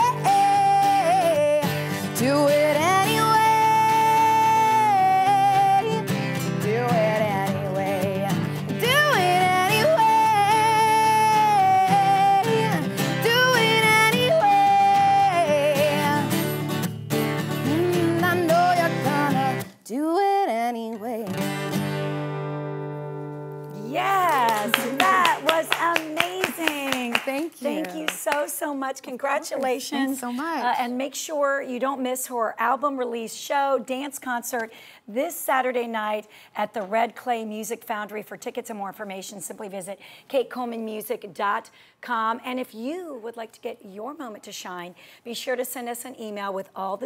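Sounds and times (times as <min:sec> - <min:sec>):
woman singing: 0:00.0 - 0:16.6, 0:17.5 - 0:21.4, 0:23.8 - 0:28.2, 0:29.6 - 0:31.0
acoustic guitar strumming: 0:00.0 - 0:19.7, 0:21.2 - 0:26.0
excited voices: 0:23.8 - 0:28.2
people clapping: 0:23.8 - 0:28.6.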